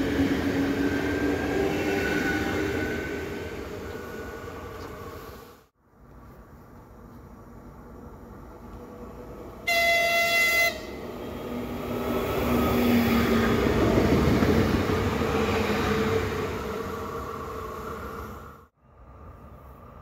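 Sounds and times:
train running past: 0.0 - 5.7, 8.0 - 20.0
train horn blast: 9.6 - 11.0.

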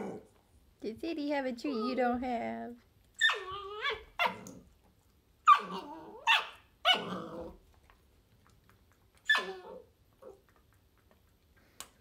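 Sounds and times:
dog yelping bark: 3.2 - 4.5, 5.4 - 7.2, 9.2 - 9.8.

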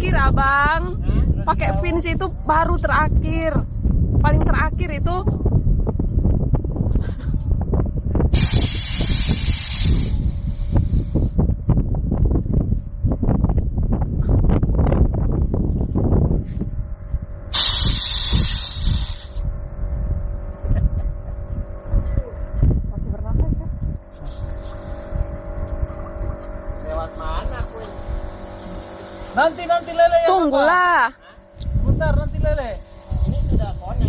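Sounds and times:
wind buffeting microphone: 0.0 - 34.0
compressed air hissing from hose: 8.3 - 11.4, 17.5 - 19.5, 24.1 - 25.4, 27.6 - 29.4, 32.7 - 33.8.

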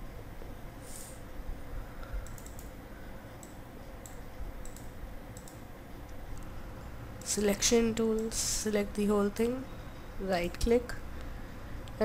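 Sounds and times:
computer mouse clicks: 2.0 - 2.8, 3.4 - 6.5.

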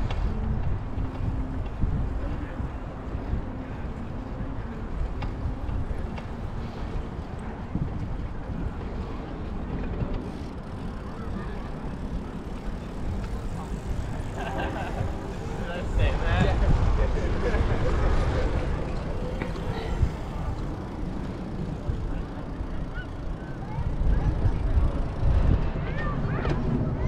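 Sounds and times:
wind rumble on microphone: 0.0 - 27.0
people talking: 10.2 - 27.0.

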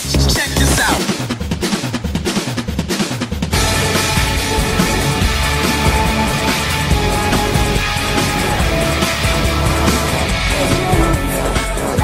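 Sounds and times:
rapid snare and drum hits: 0.0 - 12.0.

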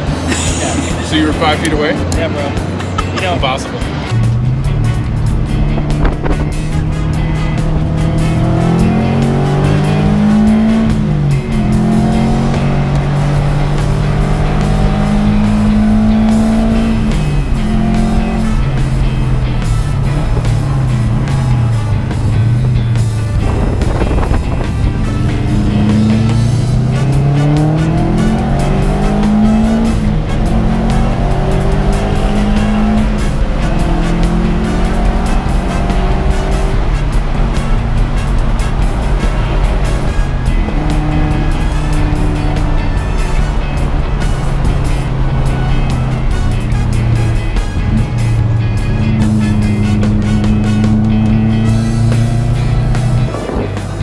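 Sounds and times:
car engine revving hard: 0.0 - 54.0.

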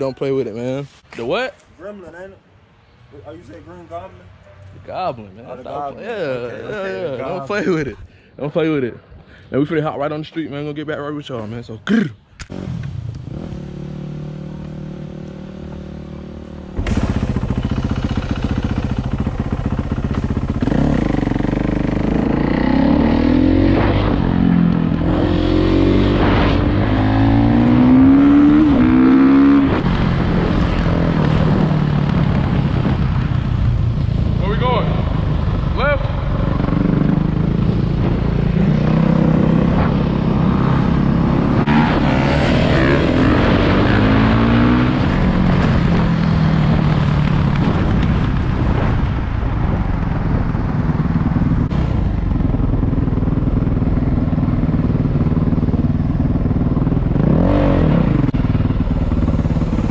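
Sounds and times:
dirt bikes revving: 12.4 - 48.2.

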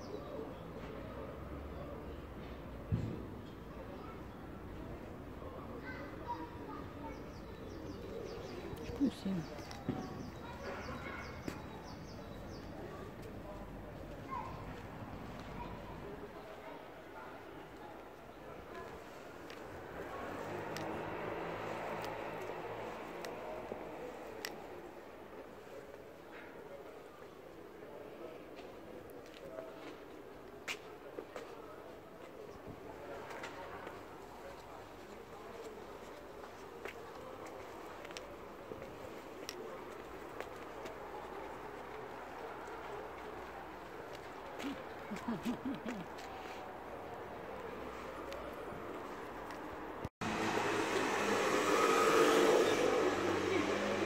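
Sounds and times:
distant traffic hum: 0.0 - 26.2, 32.5 - 54.0
street background noise: 0.0 - 54.0
vehicle engine hum: 47.6 - 54.0.

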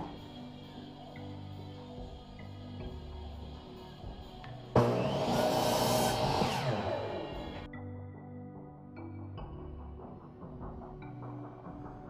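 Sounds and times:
background music: 0.0 - 12.0
electric miter saw cutting wood: 4.8 - 7.7.

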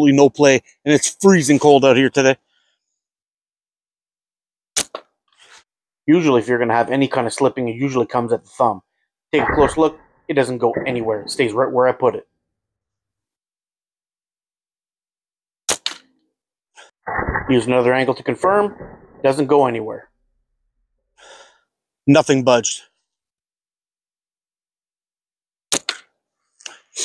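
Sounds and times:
slingshot bands snapping: 15.7 - 16.1, 25.7 - 26.1.

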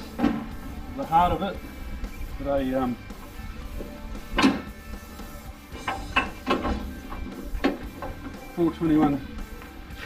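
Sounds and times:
background music: 0.0 - 10.0
car bonnet latch clunk: 4.3 - 4.8, 5.8 - 8.3
catch and hinge clicks: 4.3 - 4.8, 5.8 - 8.4.

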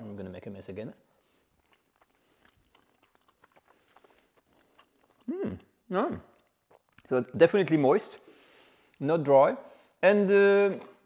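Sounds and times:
faint chewing: 1.2 - 7.1.

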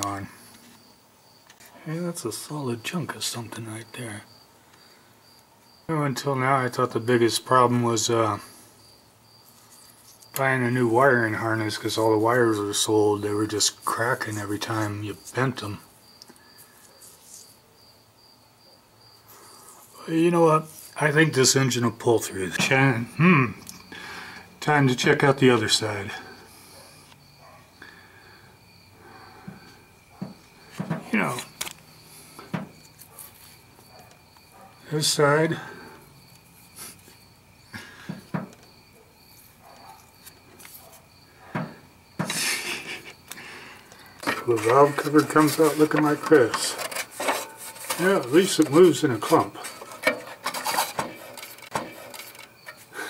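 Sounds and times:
rustling scrape: 44.2 - 52.9.

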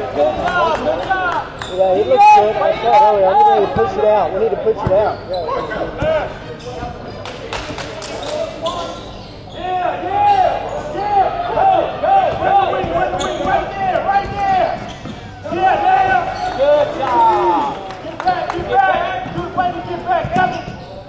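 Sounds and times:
sneakers squeaking on hardwood floor: 1.6 - 2.2, 4.7 - 7.2, 8.2 - 11.6, 12.2 - 16.6, 19.2 - 21.0.

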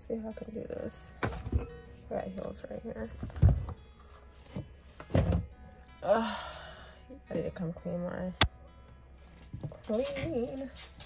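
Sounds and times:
soft acoustic music: 0.0 - 11.0.

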